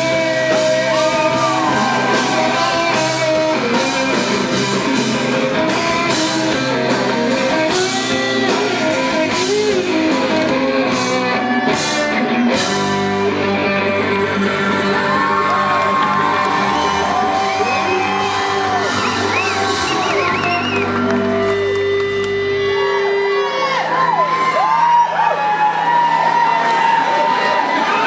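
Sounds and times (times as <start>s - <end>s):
audience whooping and shouting: 0.0s - 5.0s, 13.4s - 28.0s
live rock band playing: 0.0s - 28.0s.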